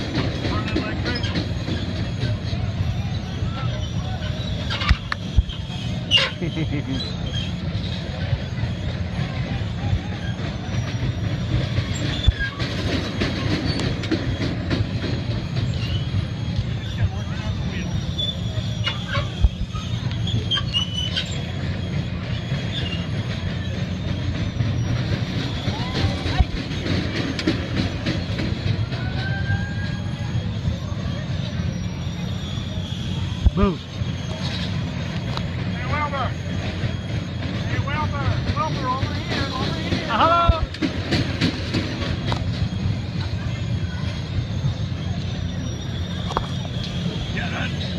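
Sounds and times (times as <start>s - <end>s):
ride machinery low rumble: 0.0s - 47.9s
brief high squeaks: 0.8s - 9.4s, 10.1s - 28.3s, 29.0s - 38.0s, 42.0s - 47.9s.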